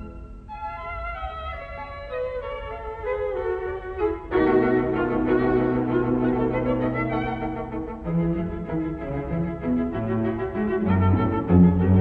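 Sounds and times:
string quartet playing: 2.2s - 12.0s.

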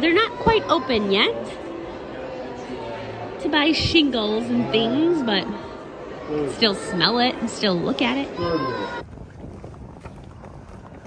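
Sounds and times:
wind buffeting microphone: 8.7s - 11.0s.

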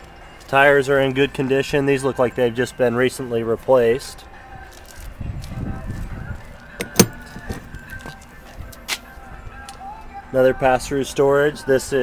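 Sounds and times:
handle and hinge clicks: 6.7s - 8.2s
door latch click: 6.8s - 7.7s.

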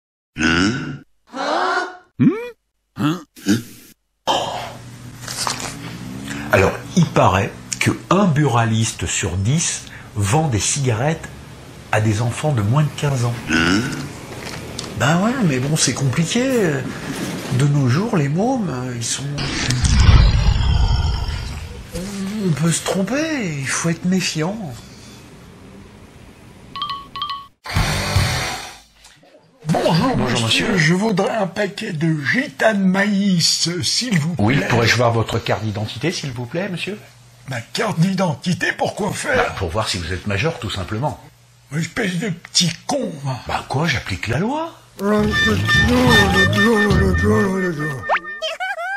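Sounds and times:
electronic chime tones: 45.2s - 48.6s.

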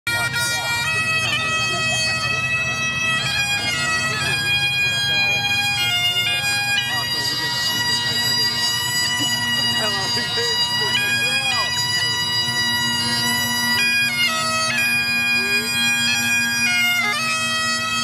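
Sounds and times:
bagpipe melody over drone: 0.1s - 18.0s.

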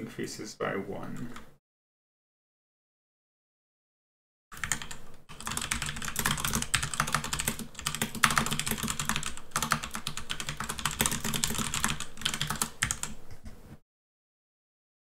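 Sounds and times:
rapid keyboard typing: 4.6s - 13.6s.

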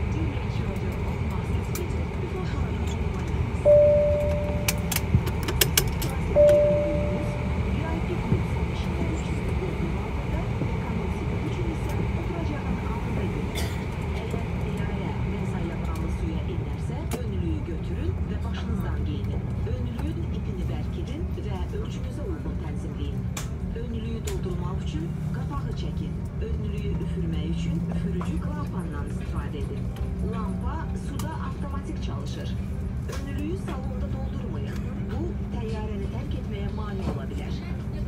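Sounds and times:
airliner cabin hum: 0.0s - 38.0s
murmur of passengers talking: 0.0s - 38.0s.

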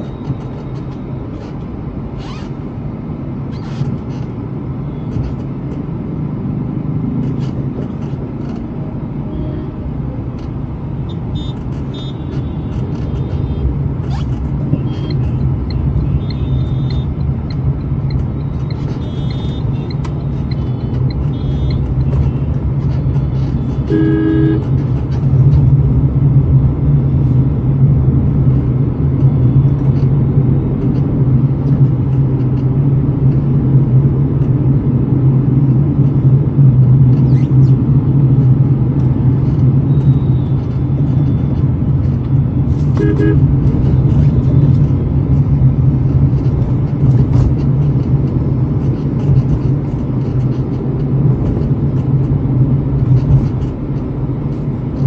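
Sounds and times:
car engine and road noise: 0.0s - 55.0s
vehicle horn honking: 11.3s - 13.6s, 19.0s - 19.9s, 20.7s - 22.4s, 23.8s - 24.7s, 43.0s - 43.5s.

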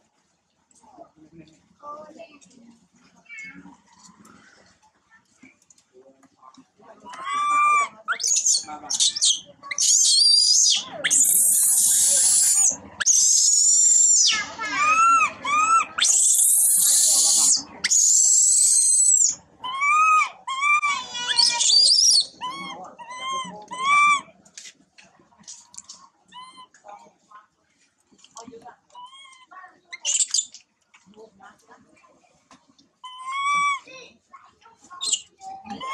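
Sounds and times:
baby monkey screaming and squealing: 7.2s - 24.3s, 26.3s - 26.8s, 29.0s - 30.6s, 33.0s - 33.9s, 35.0s - 35.9s.

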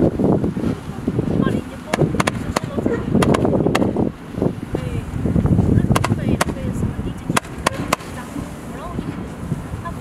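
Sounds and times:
low rumble: 0.0s - 10.0s
firework shots: 1.9s - 4.0s, 5.9s - 6.6s, 7.3s - 8.2s.

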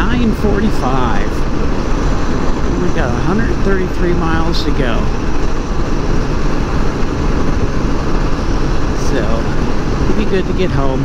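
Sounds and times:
trike road drone: 0.0s - 11.0s
wind on microphone: 0.0s - 11.0s
wind rush: 0.0s - 11.0s.

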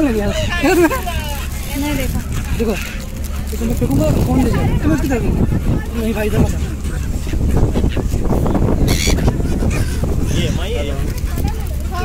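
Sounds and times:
ferry engine rumble: 0.0s - 12.0s
gull call: 8.8s - 11.0s.

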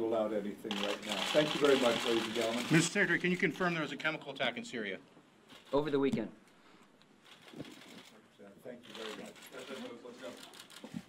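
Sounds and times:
people talking: 0.0s - 5.0s, 8.4s - 10.6s.

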